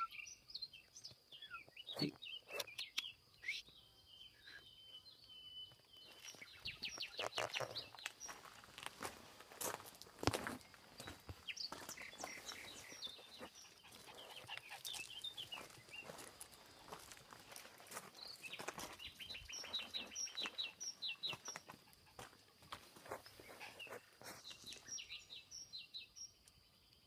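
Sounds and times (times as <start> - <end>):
small birds chirping: 0.0 - 27.0.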